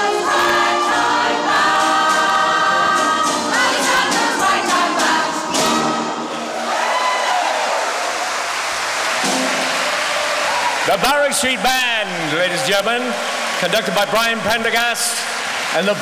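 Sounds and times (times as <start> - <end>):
brass band and choir chord: 0.0 - 6.8
audience applause: 6.3 - 16.0
man speaking: 10.9 - 15.2.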